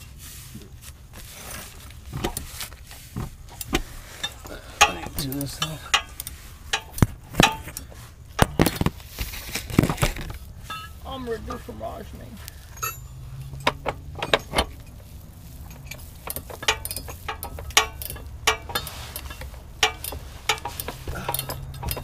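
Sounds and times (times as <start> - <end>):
rustling handling noise: 0.0 - 22.0
tools and metal parts clinking: 3.5 - 11.2, 12.5 - 22.0.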